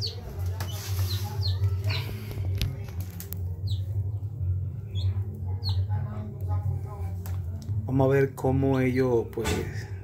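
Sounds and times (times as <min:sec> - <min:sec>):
chick peeping: 0:00.0 - 0:02.7, 0:03.6 - 0:05.9.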